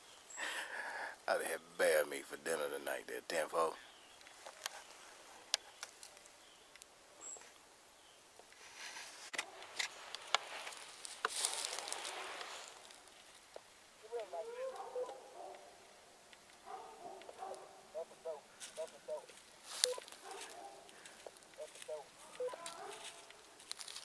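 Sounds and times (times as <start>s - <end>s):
rustling: 4.1s - 7.7s, 8.4s - 24.0s
dogs barking: 14.0s - 15.8s, 16.6s - 21.0s, 21.6s - 23.4s.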